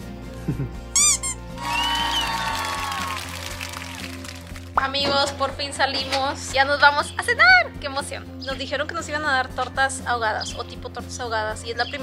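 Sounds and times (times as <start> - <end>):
background music: 0.0 - 12.0
crowd cheering and applause: 1.5 - 4.8.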